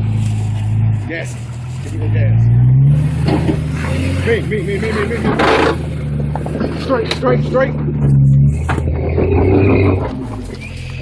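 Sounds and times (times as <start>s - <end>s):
engine running under load: 0.0s - 11.0s.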